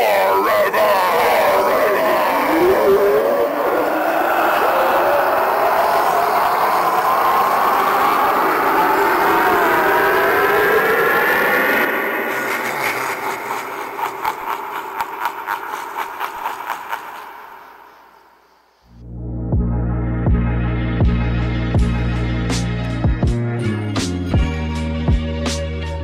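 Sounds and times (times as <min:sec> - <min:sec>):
animatronic rushing roar: 0:00.0 - 0:18.2.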